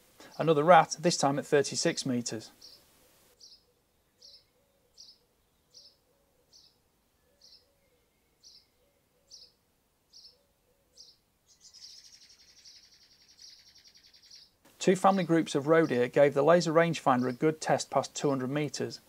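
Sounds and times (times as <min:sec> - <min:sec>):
short high bird chirps: 0:11.0 - 0:14.5.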